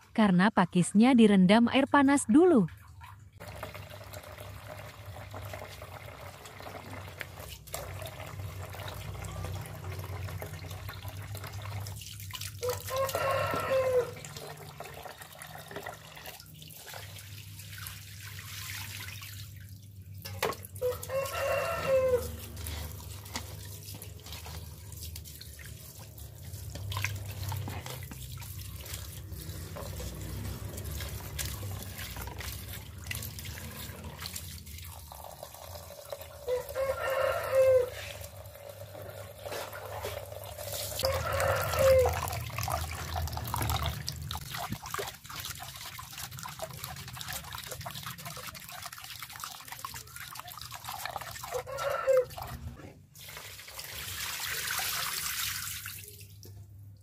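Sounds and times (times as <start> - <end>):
tap water running into metal pot: 3.4 - 19.5, 20.2 - 52.6
rooster crowing: 12.6 - 14.3, 20.8 - 22.6, 36.4 - 38.3, 41.0 - 42.4, 51.5 - 52.5.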